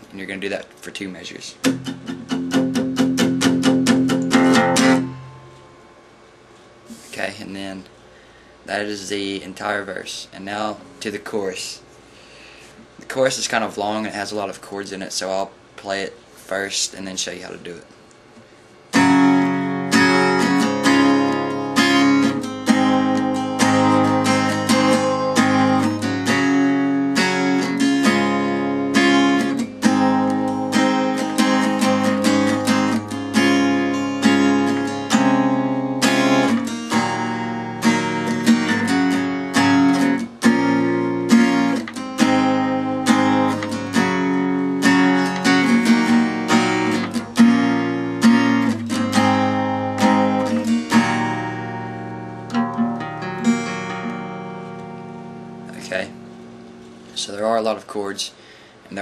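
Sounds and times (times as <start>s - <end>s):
acoustic guitar strumming: 1.6s - 6.2s, 18.9s - 57.8s.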